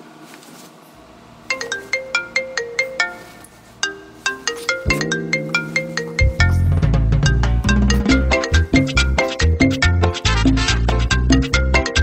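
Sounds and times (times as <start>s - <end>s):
phone alarm ringtone melody: 1.5s - 9.5s.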